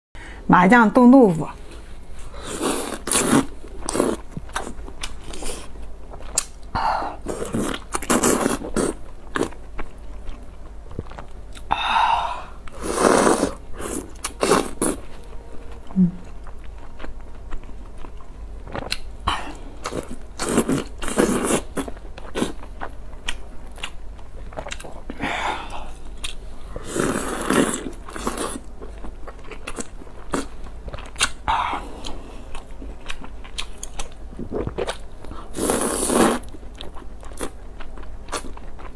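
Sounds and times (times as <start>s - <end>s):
wet chewing: 2.6s - 11.8s, 12.6s - 38.9s
slurping: 12.7s - 15.1s, 35.5s - 36.5s.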